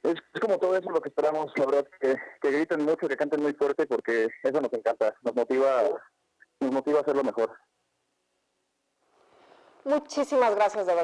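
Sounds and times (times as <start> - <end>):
faint background noise: 0.0 - 11.0
woman speaking: 9.8 - 11.0.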